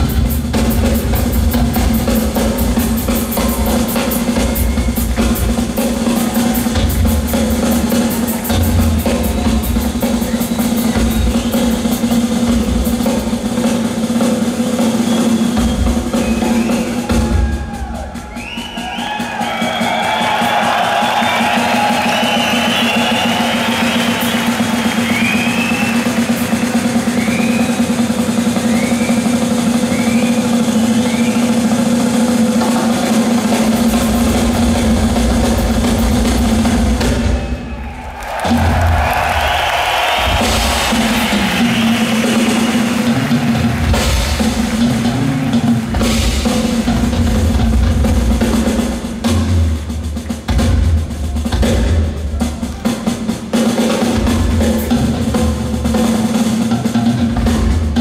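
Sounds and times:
drum rolls on snare and toms: 0.0 - 58.0
heavy bass drum strokes: 0.0 - 58.0.

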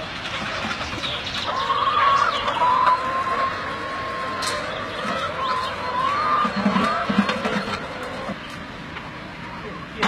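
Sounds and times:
hens clucking: 0.0 - 8.7.

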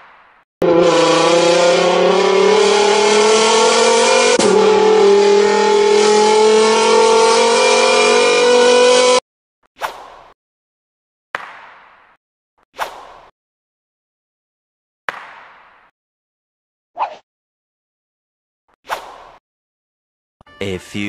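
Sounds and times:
car engine accelerating: 0.6 - 9.2.

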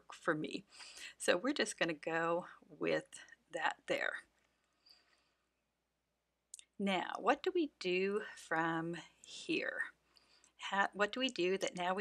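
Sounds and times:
woman speaking: 0.0 - 4.3, 6.6 - 10.0, 10.6 - 12.0.

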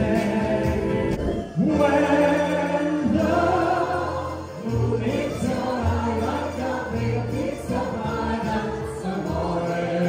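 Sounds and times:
bass line: 0.0 - 8.2
group singing: 0.0 - 10.0.

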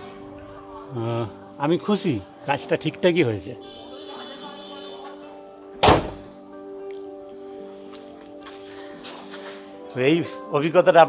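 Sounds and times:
background music: 0.0 - 11.0
car bonnet slamming shut: 5.8 - 6.3.

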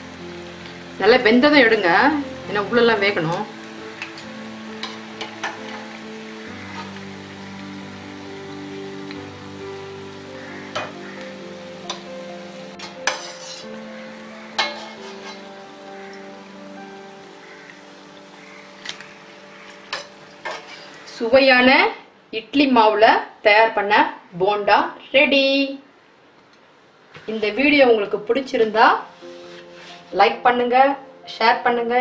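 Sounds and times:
food deep-frying in oil: 0.0 - 21.7
soft background music: 0.0 - 25.3, 27.3 - 32.0.

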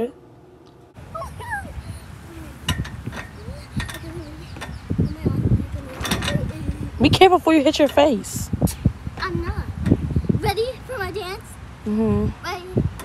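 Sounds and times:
wind buffeting microphone: 0.9 - 13.0.

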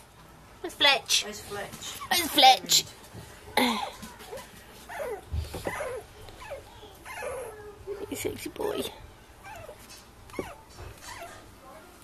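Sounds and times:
puppies whimpering: 4.1 - 11.8.

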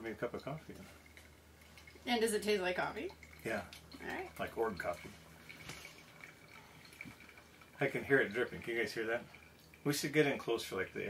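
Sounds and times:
coffee dripping into a mug: 0.0 - 11.0.

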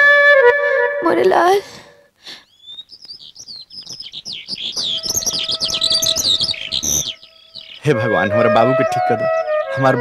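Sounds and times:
birds chirping: 2.2 - 10.0.

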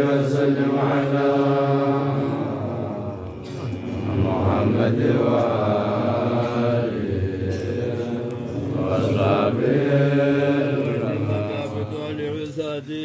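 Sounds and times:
men chanting together: 0.0 - 12.8.

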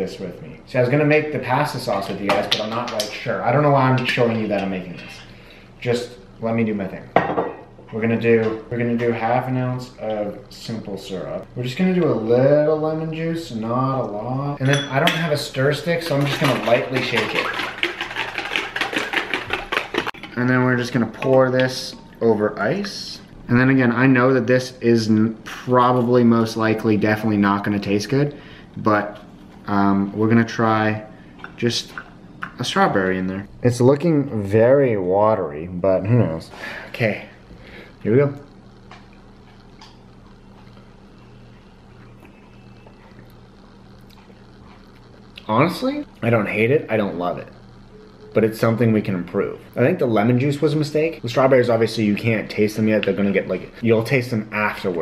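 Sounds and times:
steady low hum: 0.0 - 55.0
ice rattling in cocktail shaker: 15.9 - 21.3.

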